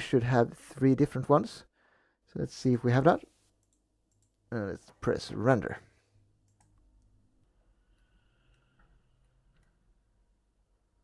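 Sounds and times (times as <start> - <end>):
faint room hum: 0.0 - 11.0
soft clicks: 3.5 - 4.4, 6.4 - 7.2.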